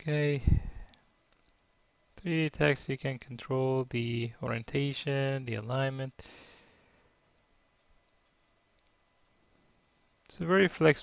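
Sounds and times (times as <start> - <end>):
faint computer mouse clicks: 7.2 - 7.5.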